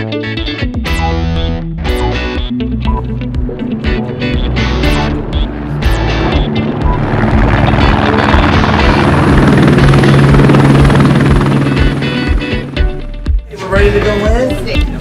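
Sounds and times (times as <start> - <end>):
guitar background music: 0.0 - 15.0
helicopter flying low: 2.0 - 14.9.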